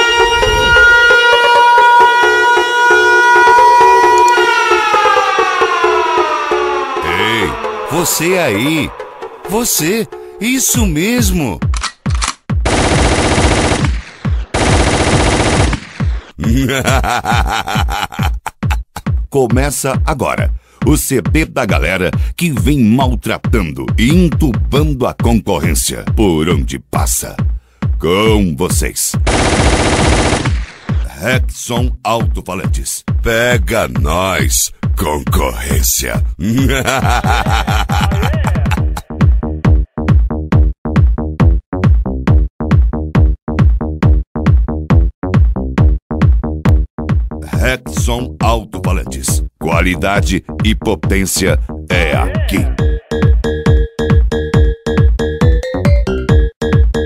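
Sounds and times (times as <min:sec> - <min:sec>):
siren-like synthesized tone: 0:00.0 - 0:09.5
beat of low thumps and clicks: 0:36.6 - 0:47.6, 0:52.6 - 0:57.0.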